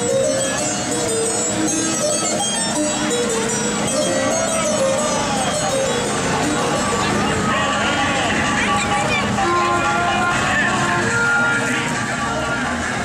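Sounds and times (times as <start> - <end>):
crowd voices: 0.0 - 13.0
music from a sound system: 0.0 - 13.0.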